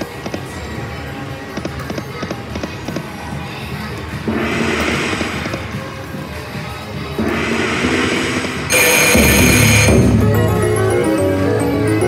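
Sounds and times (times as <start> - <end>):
slot machine electronic music: 4.2 - 6.0, 7.1 - 12.0.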